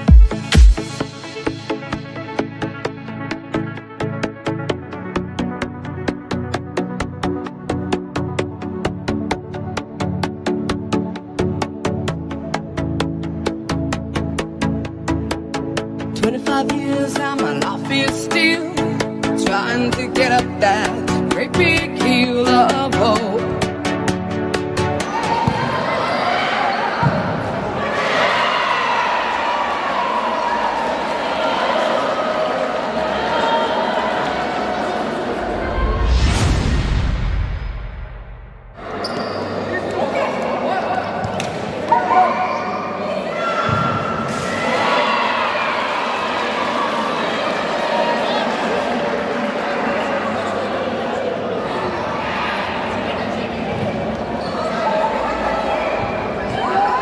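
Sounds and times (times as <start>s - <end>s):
players and spectators voices: 1.0s - 57.0s.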